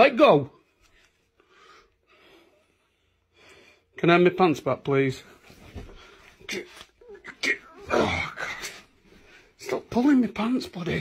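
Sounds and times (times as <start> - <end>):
faint breaths: 0.8 - 4.0.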